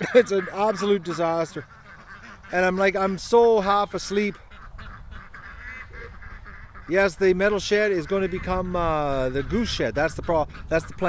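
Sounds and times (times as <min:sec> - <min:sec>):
ducks calling: 0:00.0 - 0:11.0
outdoor background noise: 0:00.0 - 0:11.0.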